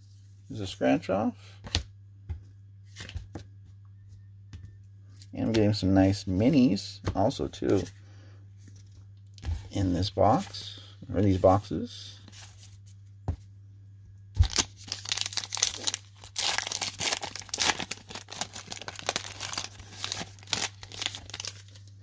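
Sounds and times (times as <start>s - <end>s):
steady low hum: 0.0s - 22.0s
wrapper tearing and crackling: 14.4s - 21.8s.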